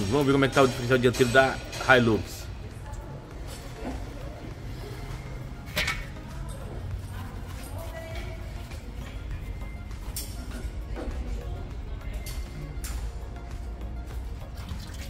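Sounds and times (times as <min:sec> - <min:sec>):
background music: 0:00.0 - 0:15.0
workshop hum: 0:00.0 - 0:15.0.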